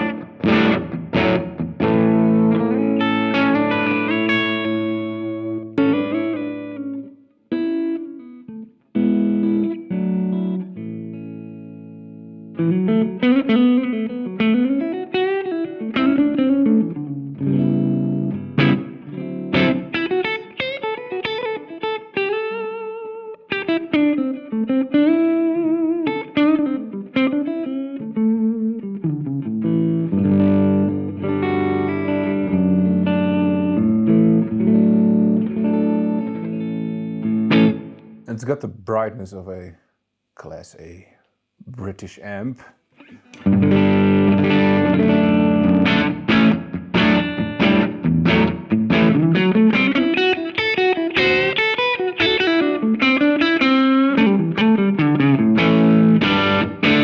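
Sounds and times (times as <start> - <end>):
overdriven electric guitar: 0.0 - 38.3, 42.9 - 57.0.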